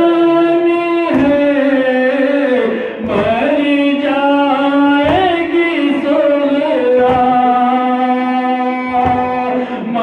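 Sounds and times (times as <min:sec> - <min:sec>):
man singing a lament: 0:00.0 - 0:10.0.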